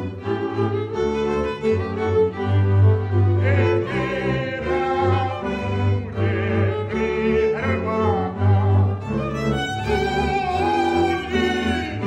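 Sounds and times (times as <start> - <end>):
bowed fiddle melody: 0.0 - 12.0
double bass notes: 0.0 - 12.0.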